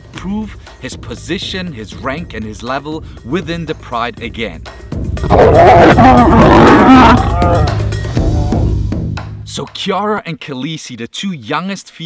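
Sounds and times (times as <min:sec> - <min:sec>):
lions snarling and growling: 0:05.2 - 0:08.7.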